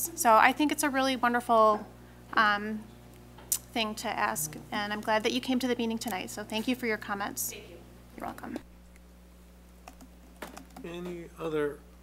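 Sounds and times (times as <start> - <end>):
low electrical hum: 0.0 - 12.0
man talking: 10.8 - 11.8.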